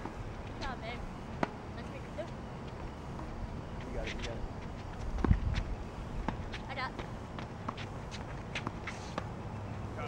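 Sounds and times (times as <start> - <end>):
footsteps on court: 3.6 - 9.3
ball bouncing: 5.0 - 5.6.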